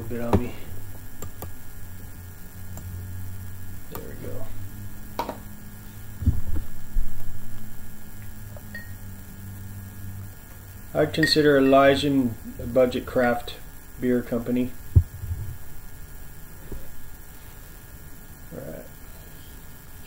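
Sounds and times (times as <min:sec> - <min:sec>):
steady electrical hum: 0:00.0 - 0:20.0.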